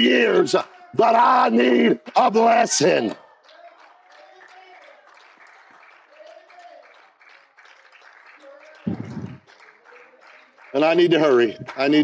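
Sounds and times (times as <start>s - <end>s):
congregation clapping: 0.0s - 12.0s
quiet voices: 6.0s - 10.7s.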